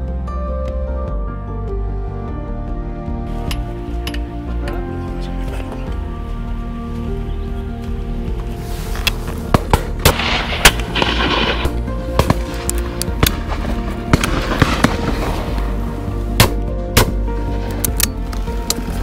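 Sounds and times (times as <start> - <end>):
background music: 0.0 - 19.0
shotgun shots: 9.6 - 12.5, 16.4 - 17.2.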